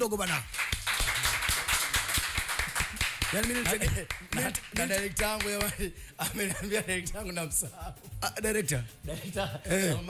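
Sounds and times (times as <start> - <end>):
people applauding: 0.0 - 5.8.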